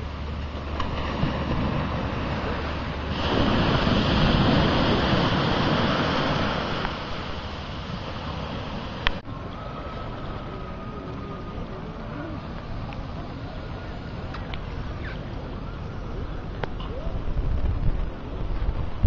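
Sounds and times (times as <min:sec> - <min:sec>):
sea water washing: 0:00.0 - 0:19.0
wind on microphone: 0:00.9 - 0:19.0.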